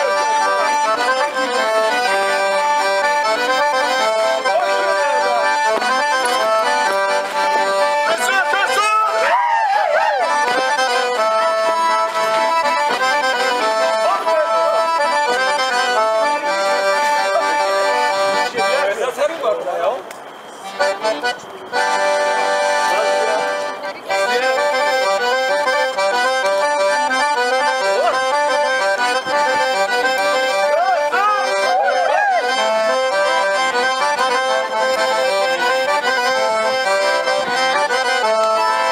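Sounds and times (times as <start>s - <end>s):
accordion folk tune: 0.0s - 38.9s.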